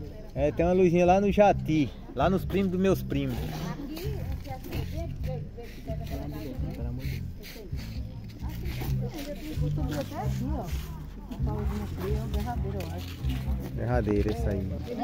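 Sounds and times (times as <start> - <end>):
people talking: 0.0 - 15.0
music with low bass line: 0.4 - 15.0.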